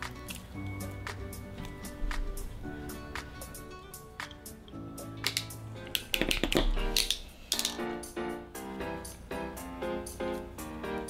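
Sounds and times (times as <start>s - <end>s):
piano background music: 0.0s - 11.0s.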